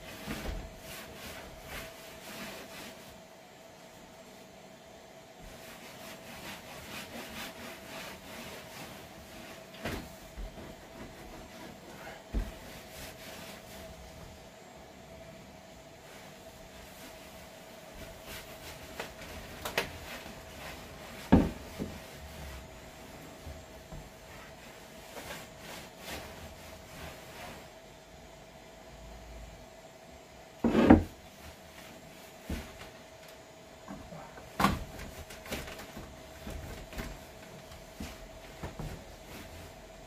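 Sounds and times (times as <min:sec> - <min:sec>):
faint steady hum: 0:00.0 - 0:40.0
rag rubbing wooden tabletop: 0:30.6 - 0:31.1.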